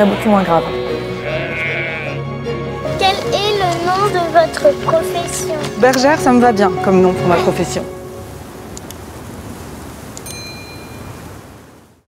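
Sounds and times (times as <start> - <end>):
rushing wind: 2.8 - 12.0
faint high chime tones: 10.2 - 11.3.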